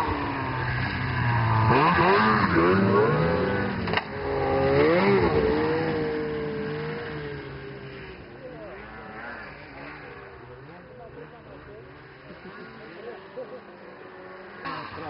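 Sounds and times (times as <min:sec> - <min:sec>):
snowmobile engine revving: 0:00.0 - 0:15.0.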